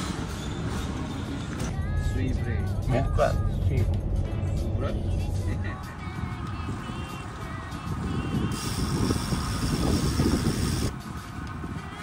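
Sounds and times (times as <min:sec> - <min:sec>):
wind buffeting microphone: 0:06.2 - 0:12.0
steady hiss: 0:08.4 - 0:11.0.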